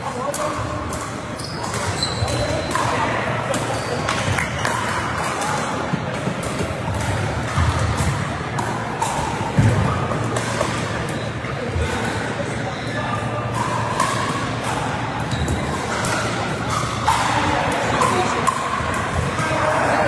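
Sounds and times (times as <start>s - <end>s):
chatter of voices: 0.0s - 20.0s.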